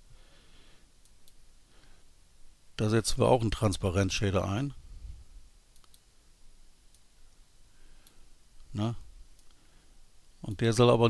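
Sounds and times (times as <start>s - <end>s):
computer mouse clicks: 5.7s - 6.1s.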